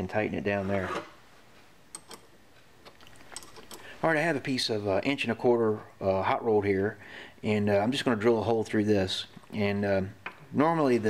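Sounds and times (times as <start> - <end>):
wrench clicking on metal nut: 2.0 - 2.3.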